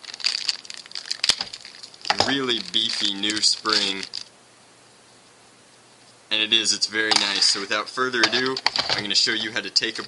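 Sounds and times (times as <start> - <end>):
plastic bag crinkling: 0.0 - 4.3, 7.1 - 9.4.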